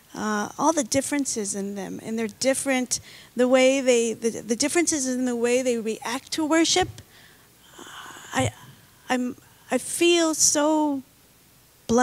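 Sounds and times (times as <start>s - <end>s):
breath into microphone: 3.0s - 3.4s, 7.1s - 8.9s.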